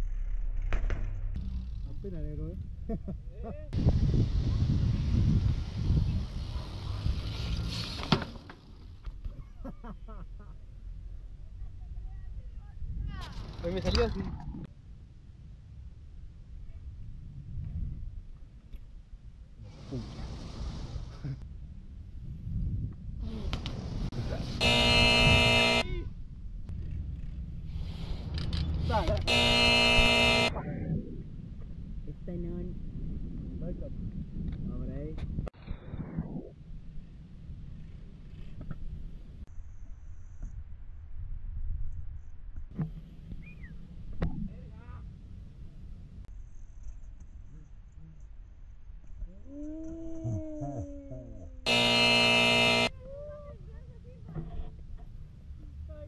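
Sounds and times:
wind rumble on microphone: 0:01.3 - 0:08.0, 0:11.2 - 0:29.3, 0:30.5 - 0:51.6
vehicle horn blaring: 0:24.6 - 0:25.9, 0:29.3 - 0:30.5, 0:51.7 - 0:52.9.

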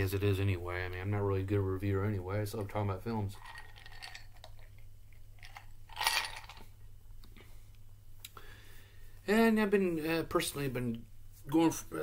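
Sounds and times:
low steady hum: 0:00.0 - 0:12.0
ice cubes clinking in a glass: 0:03.4 - 0:04.6, 0:05.4 - 0:06.6.

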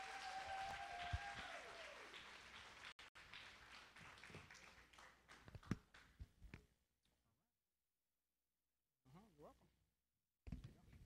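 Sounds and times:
long held cheer: 0:00.0 - 0:05.1
audience applauding: 0:00.0 - 0:06.1.

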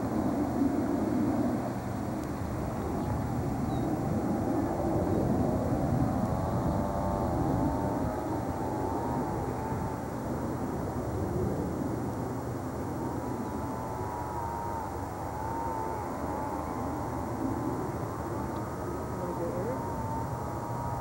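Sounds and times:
distant engine rumble: 0:00.0 - 0:21.0
thin wavering high whine: 0:00.0 - 0:21.0.

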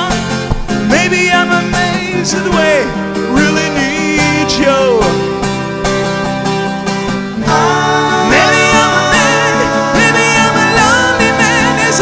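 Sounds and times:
acoustic guitar strumming chords: 0:00.0 - 0:12.0
person singing: 0:00.9 - 0:05.4, 0:07.4 - 0:12.0.

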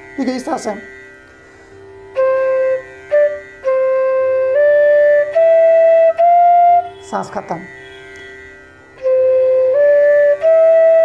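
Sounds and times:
bamboo flute playing: 0:02.1 - 0:07.3, 0:09.0 - 0:11.0.

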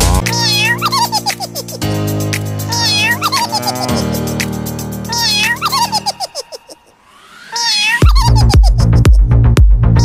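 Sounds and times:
cat meows: 0:00.3 - 0:00.9, 0:02.7 - 0:03.9, 0:05.1 - 0:05.6, 0:07.5 - 0:08.4.

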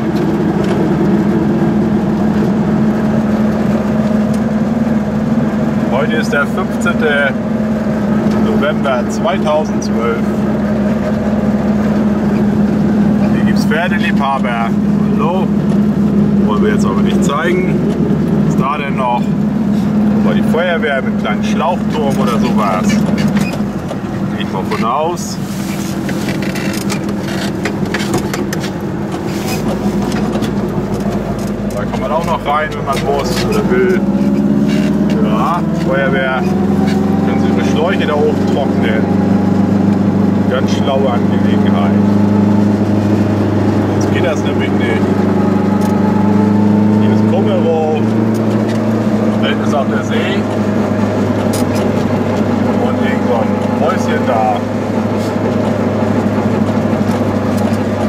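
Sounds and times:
deep rumble: 0:00.0 - 0:58.0
two-stroke car engine running: 0:00.0 - 0:58.0.

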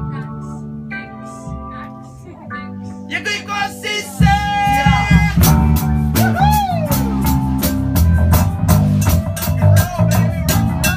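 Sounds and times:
bass guitar: 0:00.0 - 0:10.9
drum kit beat: 0:02.9 - 0:10.9.

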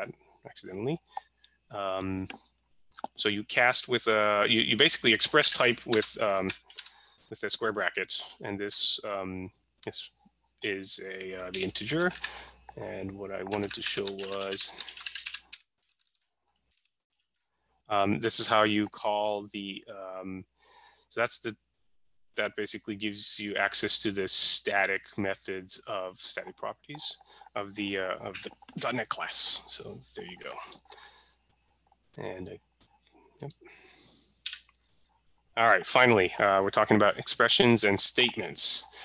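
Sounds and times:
computer keyboard typing: 0:05.0 - 0:06.9, 0:11.4 - 0:12.5, 0:13.3 - 0:15.7.

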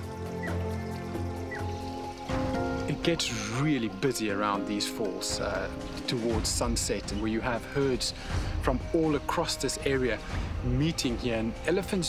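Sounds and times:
sustained low music tones: 0:00.0 - 0:12.0.

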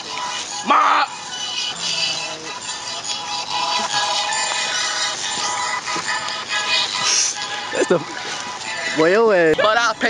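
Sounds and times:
sustained synth tones: 0:00.0 - 0:10.0.

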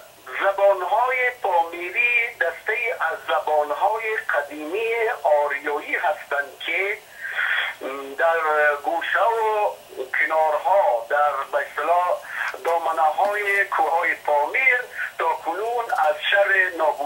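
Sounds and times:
man speaking over telephone: 0:00.2 - 0:17.0.

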